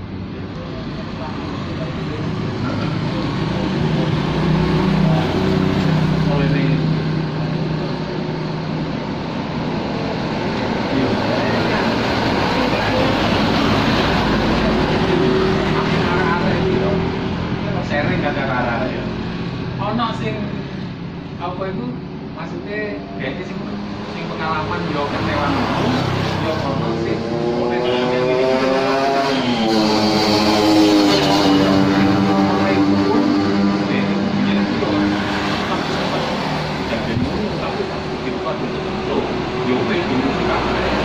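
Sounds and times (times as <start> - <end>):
vehicles passing on road: 0.0 - 41.0
engine note: 23.0 - 41.0.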